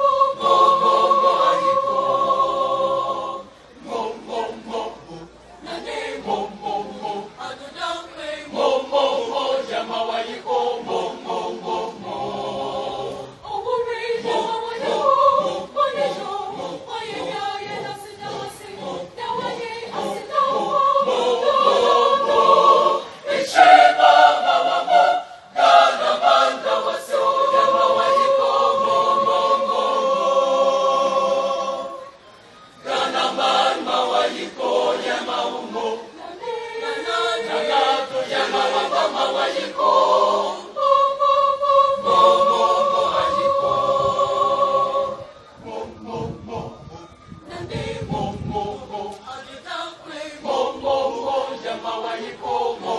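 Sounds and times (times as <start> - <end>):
children's choir singing: 0.0 - 52.9.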